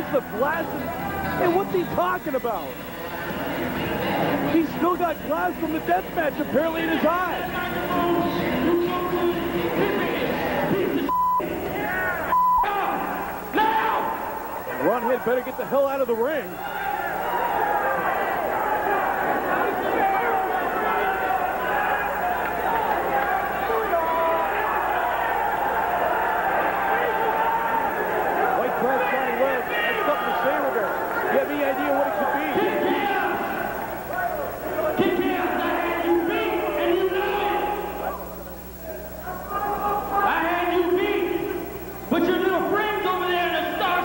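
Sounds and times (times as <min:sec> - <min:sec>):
man speaking over public address: 0:00.0 - 0:02.8, 0:04.4 - 0:11.1, 0:12.6 - 0:16.6, 0:28.6 - 0:33.6, 0:34.3 - 0:38.0, 0:38.9 - 0:44.0
censor bleeps: 0:11.1 - 0:11.5, 0:12.2 - 0:12.7
man shouting: 0:11.9 - 0:14.2.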